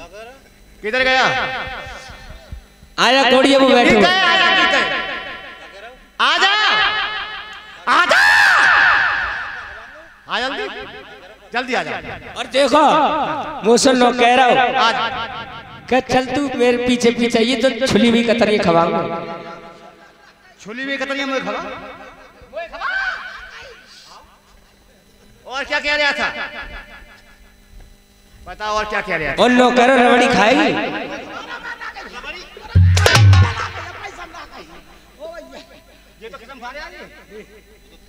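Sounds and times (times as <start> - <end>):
person laughing through microphone: 3.3 - 5.5, 30.6 - 32.2, 32.8 - 34.8.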